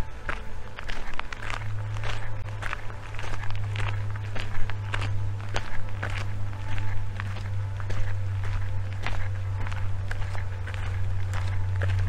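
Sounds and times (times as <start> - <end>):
footsteps crunching on path: 0.0 - 12.0
steady low hum: 0.0 - 12.0.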